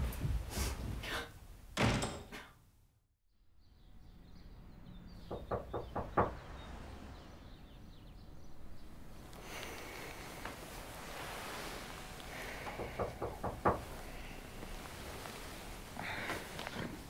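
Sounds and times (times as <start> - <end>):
knocks on a door: 5.3 - 6.4, 12.7 - 13.9.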